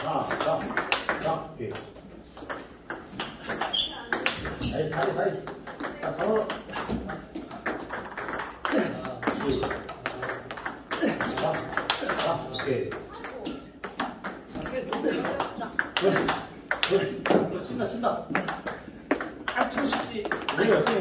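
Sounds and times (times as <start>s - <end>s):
ping pong balls clicking: 0.0s - 21.0s.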